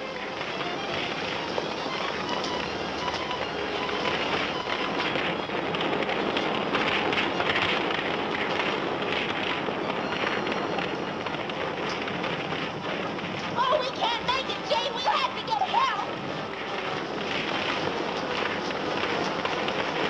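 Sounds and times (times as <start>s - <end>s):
continuous rushing fire noise: 0.0s - 20.0s
fire crackling: 0.0s - 20.0s.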